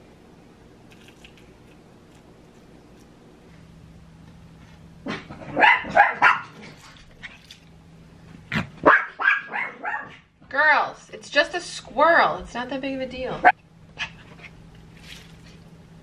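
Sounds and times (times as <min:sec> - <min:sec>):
dogs barking: 0:05.1 - 0:06.7, 0:08.8 - 0:10.3.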